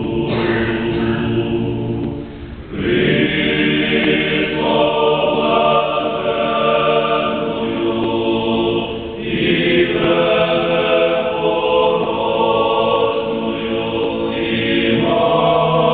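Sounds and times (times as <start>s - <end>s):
choir singing unaccompanied chant: 0.0s - 15.9s.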